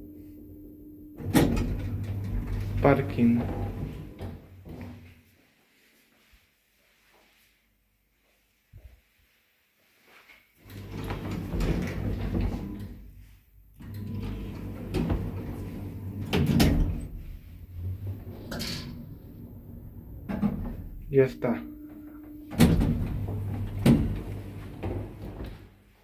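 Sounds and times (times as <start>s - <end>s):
lift motor hum: 0.0s - 4.9s, 10.6s - 13.1s, 13.8s - 25.7s
sliding lift doors: 1.2s - 5.0s, 10.6s - 21.1s, 21.8s - 25.8s.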